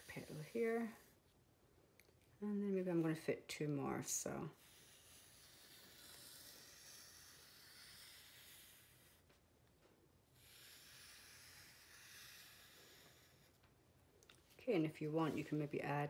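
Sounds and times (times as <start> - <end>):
marker tip sliding across paper: 4.6 - 9.3, 10.4 - 13.6.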